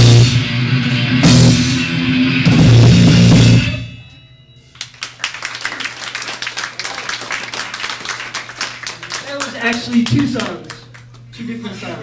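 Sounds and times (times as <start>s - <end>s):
small audience clapping: 4.7s - 11.4s.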